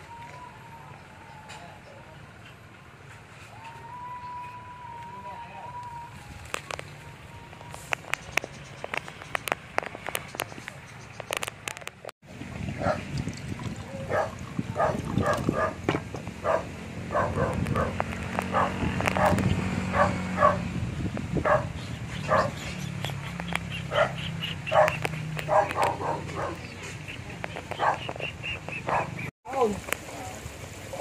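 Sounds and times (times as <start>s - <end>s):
dog barking: 12.8s - 13.0s, 14.1s - 15.8s, 16.4s - 20.6s, 21.4s - 21.7s, 22.3s - 22.6s, 23.9s - 26.7s, 27.8s - 28.1s, 28.9s - 29.2s.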